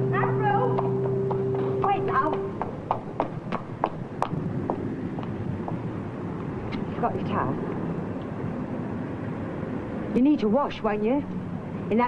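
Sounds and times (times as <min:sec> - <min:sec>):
held musical notes: 0:00.0 - 0:02.7
hard-soled footsteps on pavement: 0:00.2 - 0:07.0.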